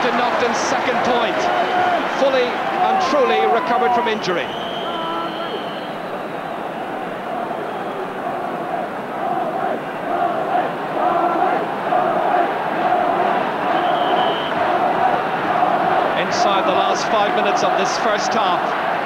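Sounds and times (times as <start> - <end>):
crowd chanting: 0.0 - 19.0
stadium crowd: 0.0 - 19.0.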